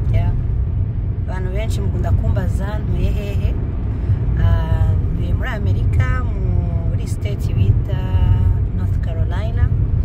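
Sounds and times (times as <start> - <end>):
car road rumble inside cabin: 0.0 - 10.0.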